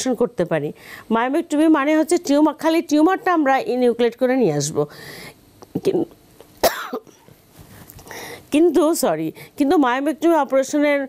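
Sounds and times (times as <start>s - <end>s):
woman coughing: 6.6s - 7.2s.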